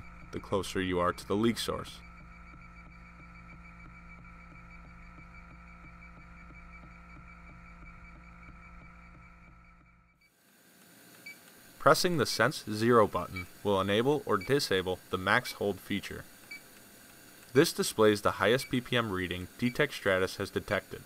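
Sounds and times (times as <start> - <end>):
sampling pump humming and pulsing: 0.0 - 21.0.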